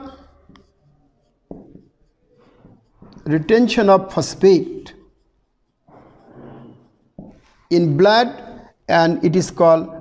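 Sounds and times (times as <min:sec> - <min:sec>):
marker pen on whiteboard: 0:00.0 - 0:10.0.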